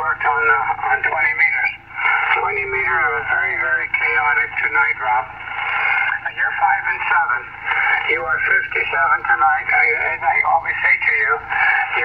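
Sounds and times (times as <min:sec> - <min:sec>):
man's voice over shortwave radio: 0:00.0 - 0:12.0.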